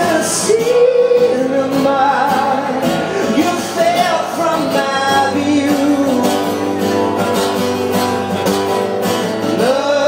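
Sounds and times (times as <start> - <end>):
man singing: 0.0 - 8.0, 9.2 - 10.0
acoustic guitar strumming: 0.0 - 10.0.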